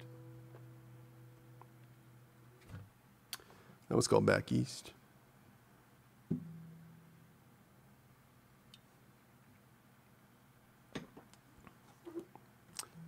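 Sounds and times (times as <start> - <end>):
acoustic guitar string ringing: 6.3 - 7.1.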